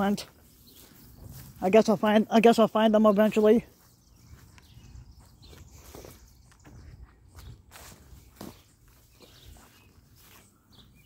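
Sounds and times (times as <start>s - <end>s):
grass swishing against legs: 0.0s - 2.5s
footsteps through long grass: 0.0s - 11.0s.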